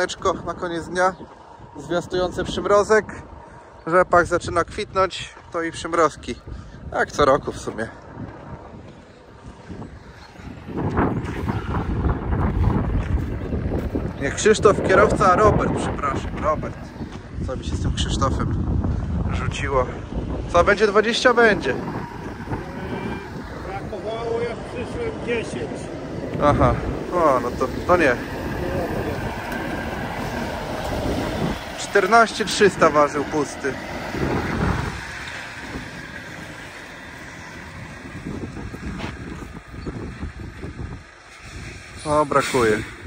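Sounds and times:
wind buffeting microphone: 0.0s - 43.0s
diesel truck driving past: 19.9s - 43.0s.

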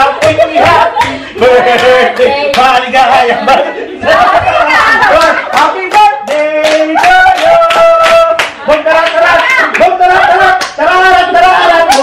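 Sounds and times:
group singing a celebration song: 0.0s - 12.0s
people clapping in time: 4.7s - 10.8s.

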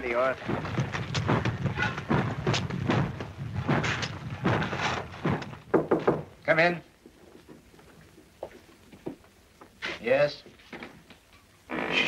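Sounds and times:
coal tubs clattering on rails: 0.0s - 5.7s
knocks on a door: 0.5s - 6.3s.

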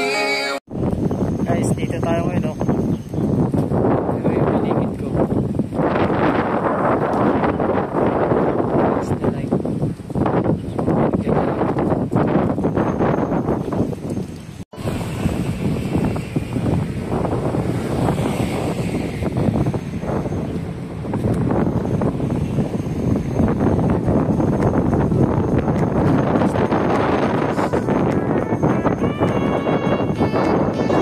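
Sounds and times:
wind buffeting microphone: 0.7s - 31.0s.

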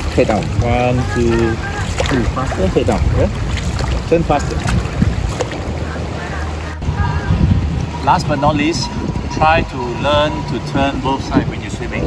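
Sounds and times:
pool water splashing: 0.0s - 12.0s
steady low rumble: 0.0s - 12.0s.

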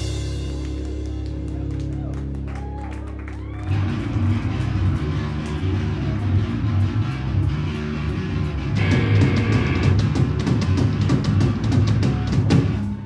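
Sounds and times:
band playing loud riff: 0.0s - 1.9s, 3.6s - 13.0s
drums: 0.0s - 13.0s
guitar chord ringing: 8.8s - 9.9s.

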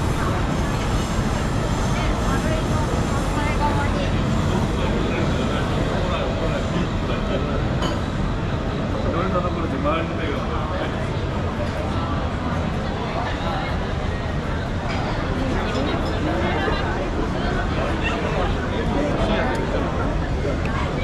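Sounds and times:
low rumble of city noise: 0.0s - 21.0s
people talking: 0.0s - 21.0s.

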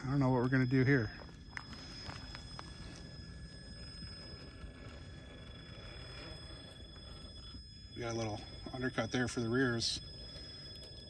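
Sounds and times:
rc truck motor whine: 0.0s - 11.0s.

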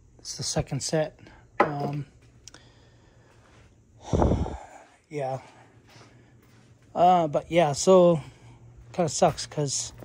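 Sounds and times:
man's snort-like exhale: 4.0s - 4.8s.

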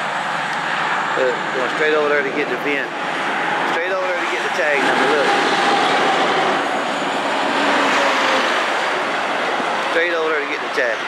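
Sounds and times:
passing vehicles and tyres: 0.0s - 11.0s.

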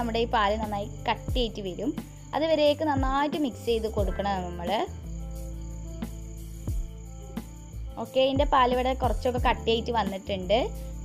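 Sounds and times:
woman speaking: 0.0s - 5.0s, 8.0s - 10.8s
background music: 0.0s - 11.0s.

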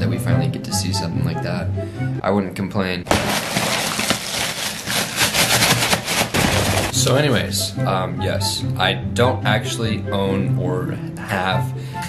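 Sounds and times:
hand rustling in cereal box: 3.1s - 7.0s.

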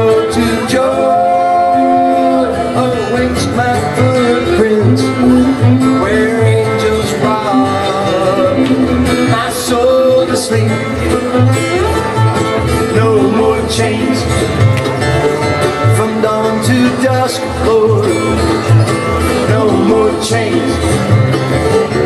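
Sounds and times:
men singing in harmony: 0.0s - 11.2s, 12.6s - 14.6s, 15.7s - 21.3s
acoustic guitar: 0.0s - 22.0s
banjo: 0.0s - 22.0s
mandolin: 0.0s - 22.0s
upright bass: 0.0s - 22.0s.

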